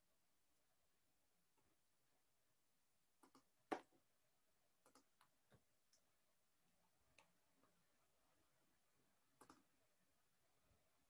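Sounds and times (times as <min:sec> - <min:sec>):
faint clicks: 0:04.8 - 0:06.1, 0:09.4 - 0:09.7.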